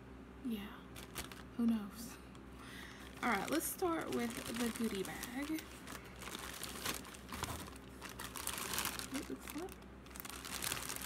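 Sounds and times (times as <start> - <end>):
plastic bag crinkling: 1.0 - 1.8, 3.0 - 11.0.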